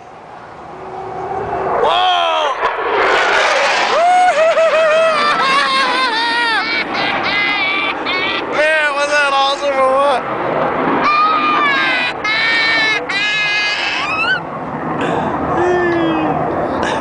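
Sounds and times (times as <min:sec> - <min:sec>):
child screaming: 0:03.9 - 0:08.6, 0:11.0 - 0:14.5.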